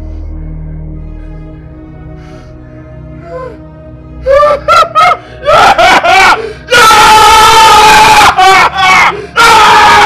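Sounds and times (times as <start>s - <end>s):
man yelling in jubilation: 5.8s - 10.0s.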